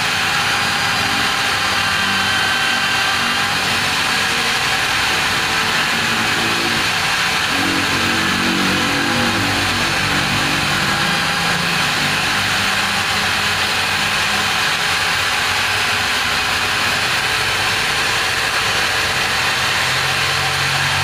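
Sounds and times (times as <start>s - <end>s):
angle grinder grinding metal: 0.0s - 21.0s.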